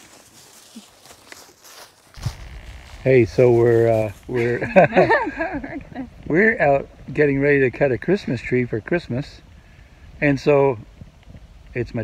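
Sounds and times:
footsteps in dry leaves: 0:00.0 - 0:04.7
low rumble: 0:02.2 - 0:08.8.

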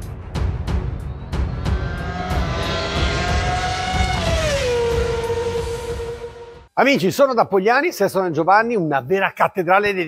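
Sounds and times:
vehicle engine passing by: 0:01.3 - 0:06.6.

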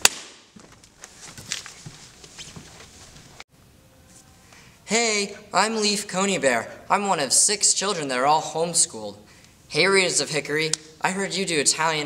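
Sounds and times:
faint knocks and rustling: 0:00.6 - 0:03.4.

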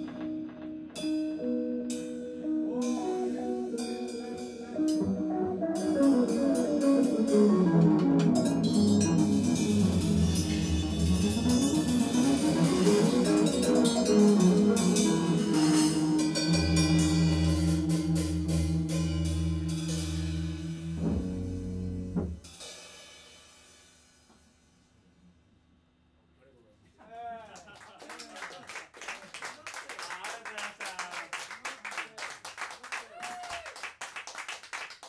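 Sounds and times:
electric guitar improvising: 0:00.0 - 0:22.4
drum kit with busy cymbals: 0:00.0 - 0:25.0.

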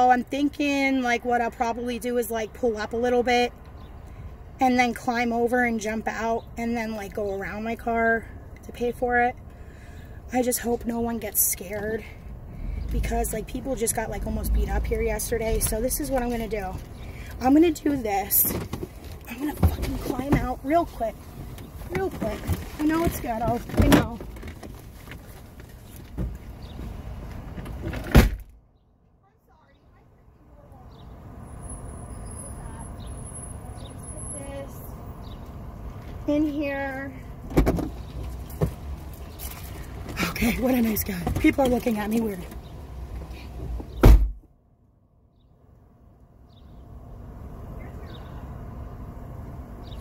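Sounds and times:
vehicle engine rumble: 0:00.0 - 0:50.0
rustling and shifting: 0:11.6 - 0:28.6
car door slamming shut: 0:27.9 - 0:28.5, 0:43.9 - 0:44.4.

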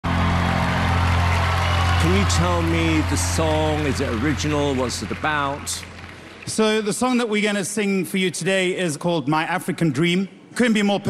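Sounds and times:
low sustained drone: 0:01.8 - 0:06.5.

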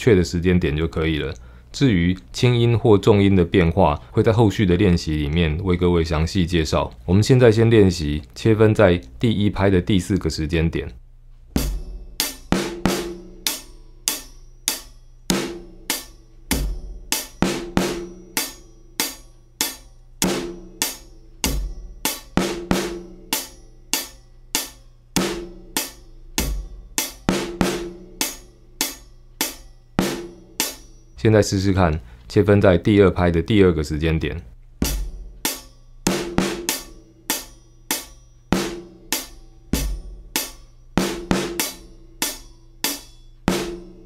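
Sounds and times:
drum kit playing a groove: 0:11.5 - 0:31.1, 0:34.8 - 0:44.0.

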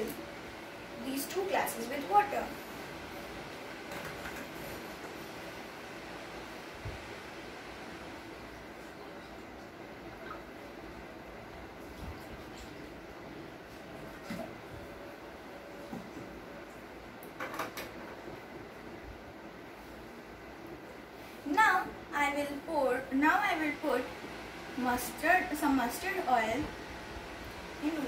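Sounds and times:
steady background hiss: 0:00.0 - 0:28.0.

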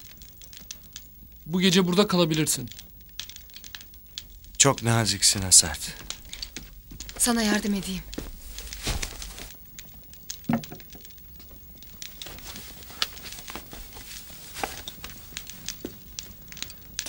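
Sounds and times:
small clicks: 0:00.0 - 0:01.4, 0:02.7 - 0:08.8, 0:14.6 - 0:17.0
soft footsteps: 0:02.9 - 0:16.4
clothing rustle: 0:03.5 - 0:10.1, 0:11.8 - 0:16.5.

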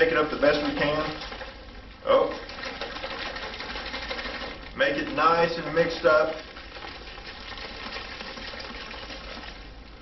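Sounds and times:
water sloshing in plastic container: 0:00.0 - 0:09.7.

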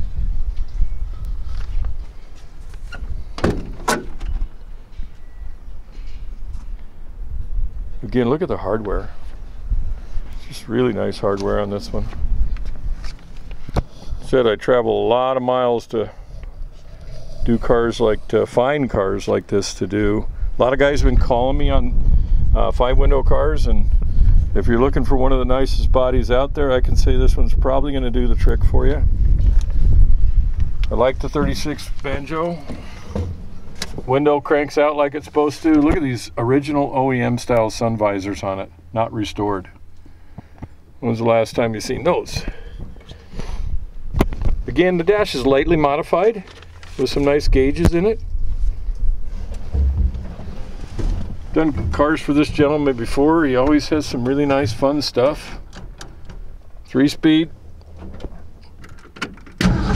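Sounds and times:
wind buffeting microphone: 0:00.0 - 0:15.1, 0:16.2 - 0:36.1, 0:42.0 - 0:46.0, 0:47.0 - 0:56.7
car door latch clicks: 0:02.9 - 0:04.4
low rumble: 0:47.3 - 0:54.8.

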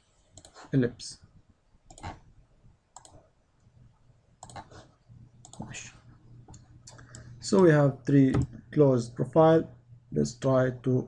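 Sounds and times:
computer mouse clicking: 0:01.9 - 0:02.2, 0:03.0 - 0:03.2, 0:04.4 - 0:04.8, 0:05.4 - 0:05.7.

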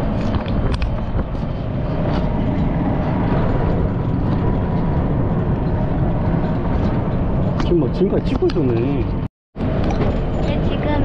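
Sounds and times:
road and wind rumble: 0:00.0 - 0:11.0
vehicle engine drone: 0:00.0 - 0:11.0.

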